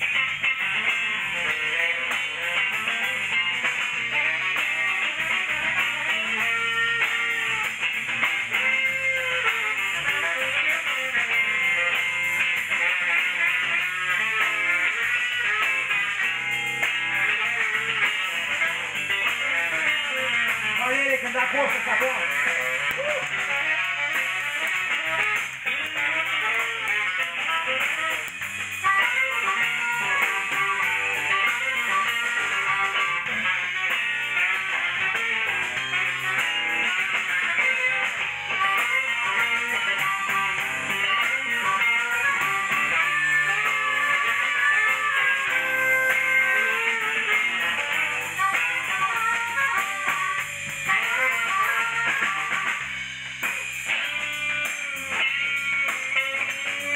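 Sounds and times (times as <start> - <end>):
electric guitar: 0.0 - 56.9
live band playing: 0.0 - 56.9.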